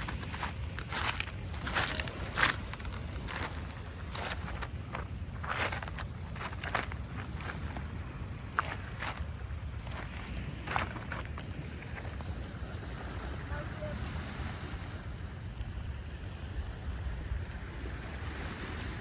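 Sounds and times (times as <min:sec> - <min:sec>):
small waves lapping on rocks: 0:00.0 - 0:19.0
wind rumble on microphone: 0:00.0 - 0:19.0.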